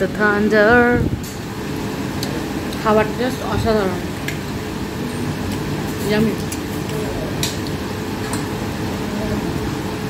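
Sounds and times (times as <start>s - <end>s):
restaurant background rumble: 0.0s - 10.0s.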